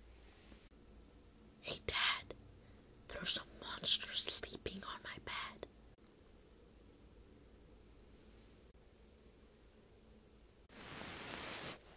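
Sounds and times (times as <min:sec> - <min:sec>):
boy whispering: 0:01.6 - 0:02.4, 0:03.1 - 0:05.7.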